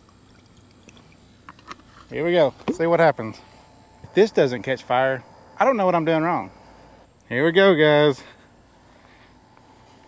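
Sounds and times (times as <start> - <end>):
liquid trickling: 0.0 - 2.8.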